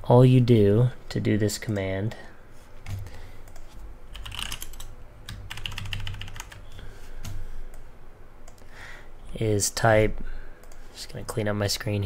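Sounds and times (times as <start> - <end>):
typing on keyboard: 3.5 - 6.6.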